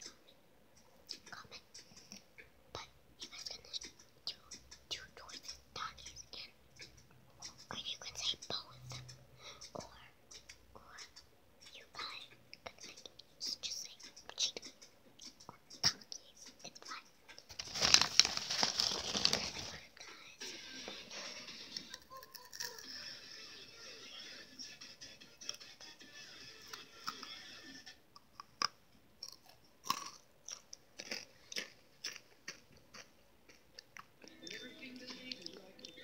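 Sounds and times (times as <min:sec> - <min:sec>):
girl whispering: 0:01.1 - 0:02.0, 0:02.7 - 0:06.6, 0:07.4 - 0:17.2, 0:19.4 - 0:20.5
crinkling rustle: 0:17.5 - 0:19.9.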